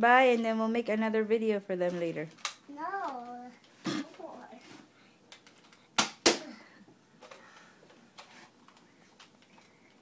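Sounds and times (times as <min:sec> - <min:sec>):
toy blaster snaps: 0:06.0 - 0:06.5.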